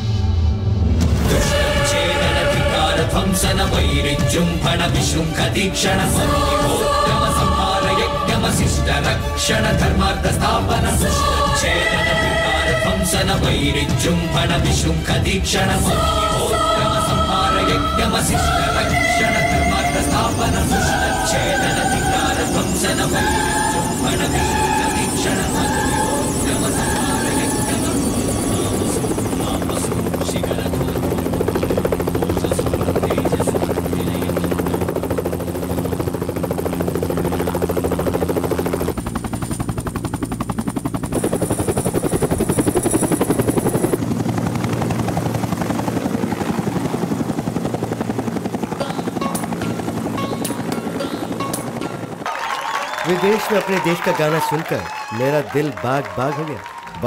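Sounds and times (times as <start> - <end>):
film music: 0.0 - 41.4, 42.2 - 57.0
helicopter rotor and engine: 1.1 - 52.3
man speaking: 53.0 - 57.0.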